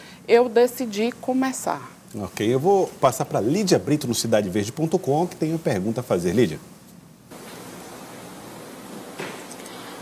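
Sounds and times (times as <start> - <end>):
line noise hiss: 0.0 - 10.0.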